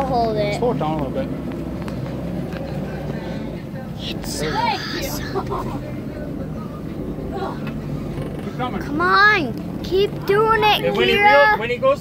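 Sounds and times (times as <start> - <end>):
boat engine running low hum: 0.0 - 12.0.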